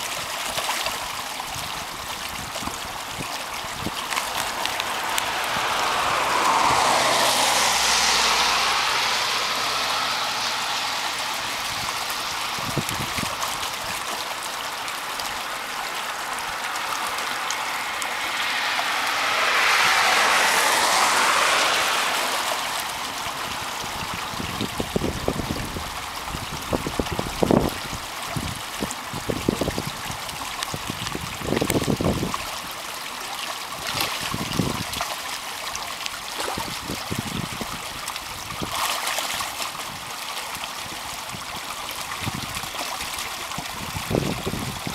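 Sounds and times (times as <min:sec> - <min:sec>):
creek water rushing and trickling: 0:00.0 - 0:44.9.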